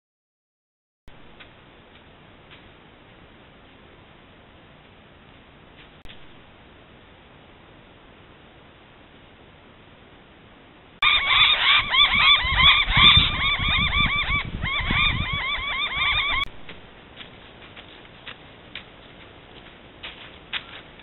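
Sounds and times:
bird calling loudly: 11.0s - 16.5s
faint ticks and rustles: 16.7s - 21.0s.

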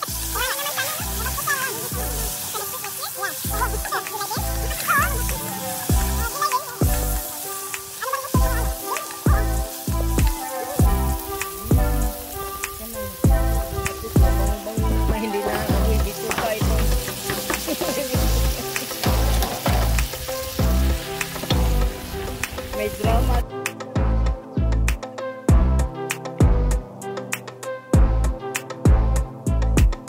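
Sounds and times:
vegetables sizzling in a pot: 0.0s - 23.4s
background music with a beat: 0.0s - 30.0s
wooden spoon stirring: 14.6s - 18.4s.

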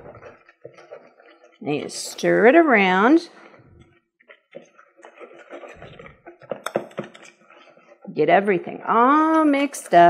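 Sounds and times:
whisk stirring batter in bowl: 0.0s - 10.0s.

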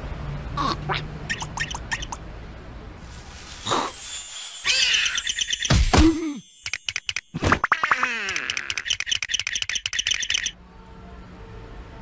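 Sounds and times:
high bird-like chirping: 1.2s - 2.2s, 4.7s - 5.9s, 8.6s - 10.6s.

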